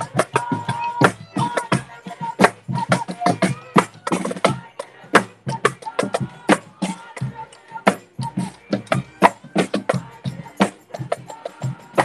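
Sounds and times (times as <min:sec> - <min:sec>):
marching bass drums beaten hard: 0:00.0 - 0:12.0.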